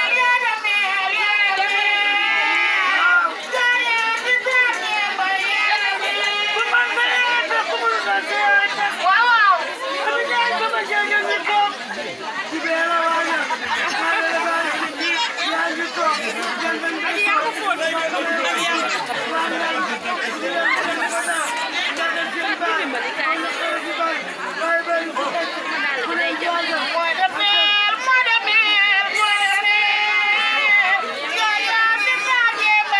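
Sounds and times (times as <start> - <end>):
crowd chatter: 0.0 - 32.9
women talking through megaphones: 0.0 - 32.9.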